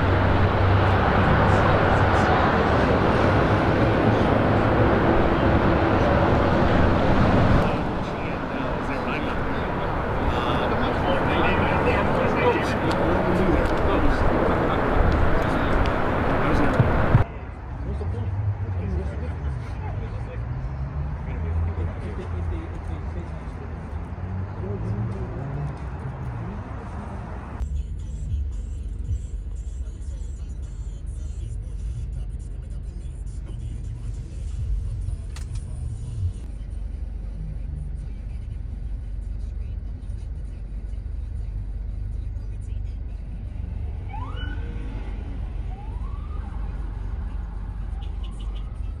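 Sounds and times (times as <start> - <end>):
traffic rumble: 0.0 - 49.0
siren whoops: 44.1 - 44.7, 45.6 - 46.9.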